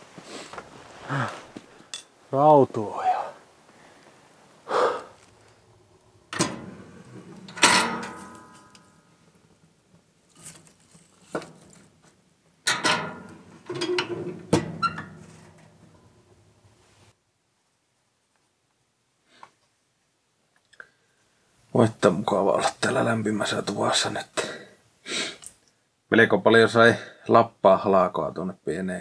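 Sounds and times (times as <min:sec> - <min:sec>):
metal stove door clanking: 0:06.3 - 0:08.8, 0:12.6 - 0:15.7.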